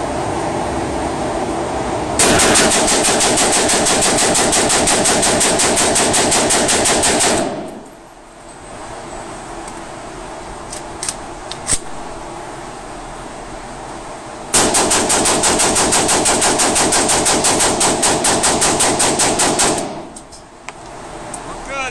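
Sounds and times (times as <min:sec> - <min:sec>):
automatic rifle bursts: 0:02.2 - 0:07.9, 0:14.6 - 0:20.3
gun clicks: 0:10.7 - 0:12.0.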